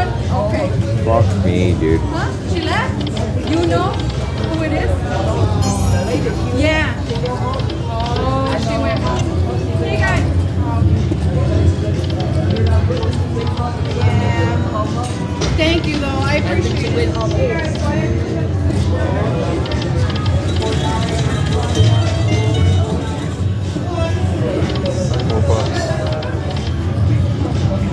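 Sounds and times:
people talking: 0.0 - 26.5
slot machine music and jingles: 3.5 - 7.4, 19.8 - 23.6.

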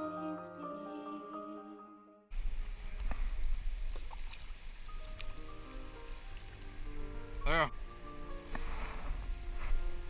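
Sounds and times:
background music: 0.0 - 3.2, 4.9 - 10.0
rushing river water: 2.4 - 8.8
wind rumble on microphone: 8.5 - 10.0.

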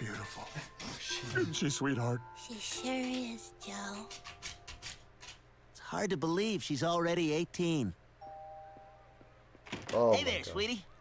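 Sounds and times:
two-tone doorbell chime: 8.2 - 9.2.

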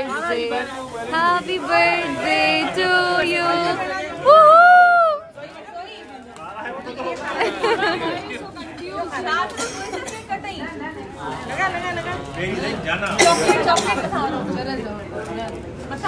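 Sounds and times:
people chattering: 0.0 - 16.0
high drawn-out cheer: 4.2 - 5.3.

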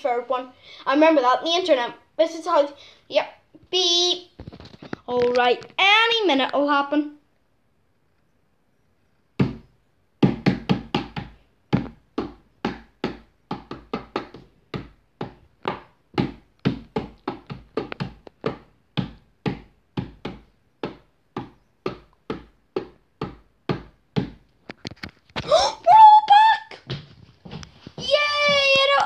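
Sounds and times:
sharp knocks: 9.4 - 24.4.

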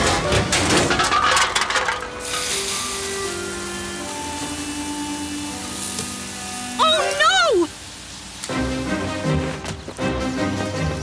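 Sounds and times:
metal cans clattering: 0.0 - 2.8
background music: 2.1 - 7.7, 8.4 - 11.0
soda fizzing hiss: 2.2 - 11.0.

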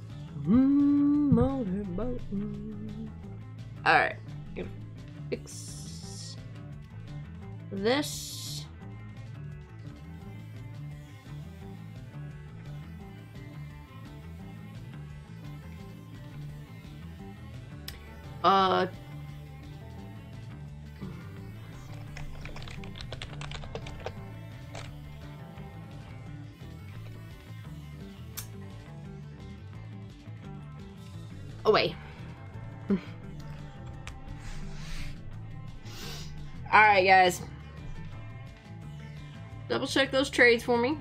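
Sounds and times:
background music: 0.0 - 41.0
short wavering vocal sound: 0.4 - 3.3
computer keyboard typing: 22.1 - 25.0.

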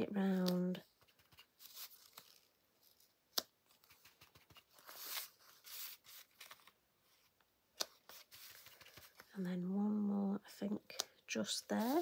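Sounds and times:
paper card rustling: 0.4 - 9.3, 11.7 - 12.0.

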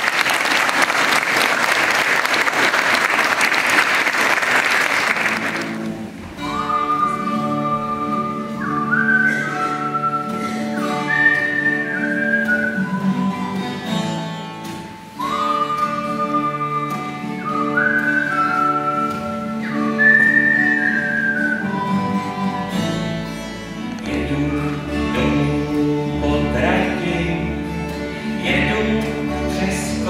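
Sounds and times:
acoustic guitars: 0.0 - 30.0
double bass: 5.4 - 30.0
high whistle-like melody: 6.4 - 23.3, 24.2 - 26.2.

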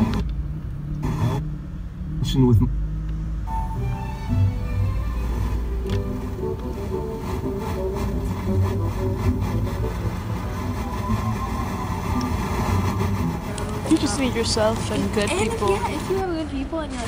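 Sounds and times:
car radio playing music: 0.0 - 0.4, 1.0 - 1.5, 3.4 - 16.3
car cabin low rumble: 0.0 - 16.3.

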